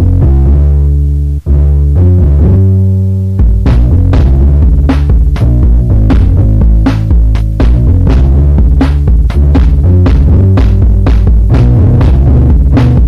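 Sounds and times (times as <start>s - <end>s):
heavy bass line: 0.0s - 13.0s
sharp drum machine hits: 3.4s - 13.0s.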